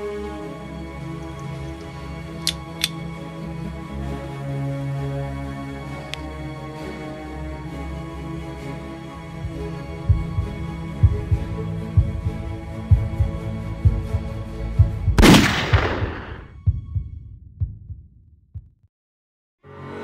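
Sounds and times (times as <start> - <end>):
low heartbeat-like thumps: 9.4 - 18.9.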